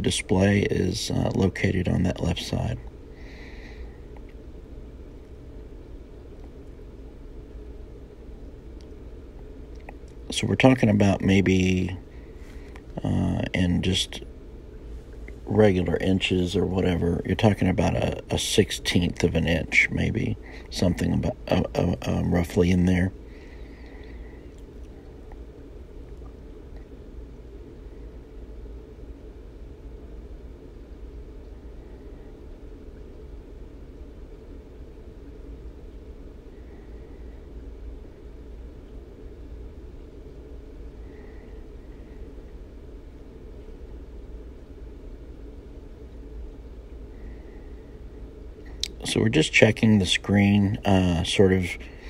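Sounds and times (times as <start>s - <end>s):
room hum and hiss: 0.0s - 52.0s.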